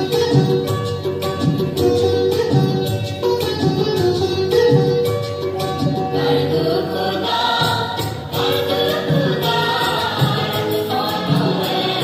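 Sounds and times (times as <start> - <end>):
dance music beat: 0.0 - 12.0
group of voices singing: 6.1 - 12.0.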